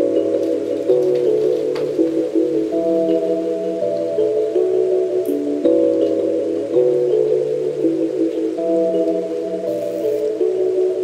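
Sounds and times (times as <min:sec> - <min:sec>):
ambient chime-like music: 0:00.0 - 0:11.0.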